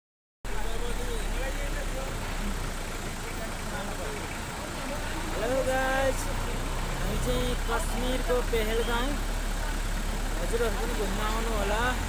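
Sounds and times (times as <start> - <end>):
faint voices: 0.5 - 12.0.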